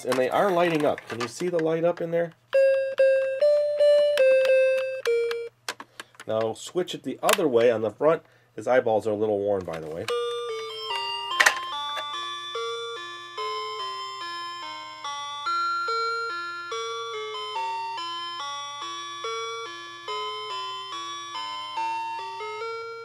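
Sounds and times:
chime-like beeping toy melody: 0:02.6 - 0:05.5, 0:10.1 - 0:23.0.

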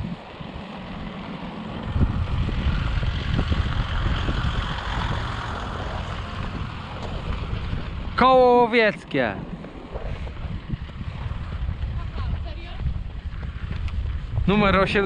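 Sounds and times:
vehicle driving on gravel: 0:00.0 - 0:15.0
wind buffeting microphone: 0:00.0 - 0:15.0.

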